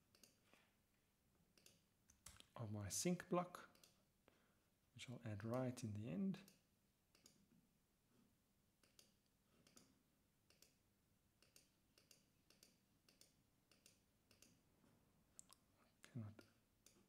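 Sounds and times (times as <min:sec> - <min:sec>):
computer mouse clicking: 0:00.1 - 0:00.4, 0:01.6 - 0:02.5, 0:03.7 - 0:04.0, 0:06.4 - 0:07.4, 0:08.8 - 0:09.9, 0:10.5 - 0:10.8, 0:11.4 - 0:14.6.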